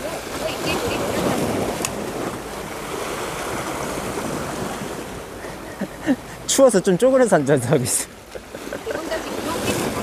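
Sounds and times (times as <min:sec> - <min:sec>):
sea waves breaking on rocks: 0:00.0 - 0:10.0.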